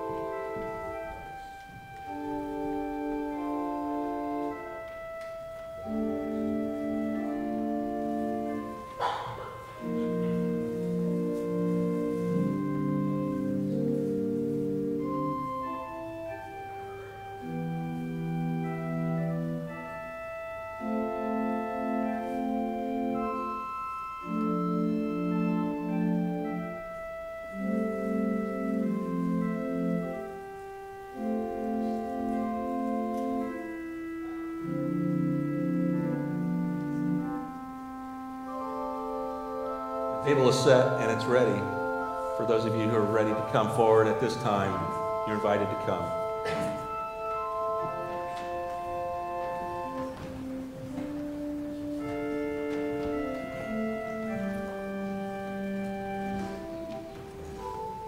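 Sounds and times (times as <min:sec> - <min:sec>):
organ playing held chords: 0:00.0 - 0:58.0.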